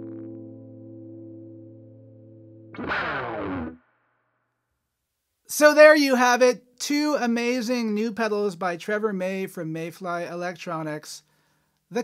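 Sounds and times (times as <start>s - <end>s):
electric guitar chord: 0.0s - 3.8s
guitar note sliding down: 0.0s - 4.0s.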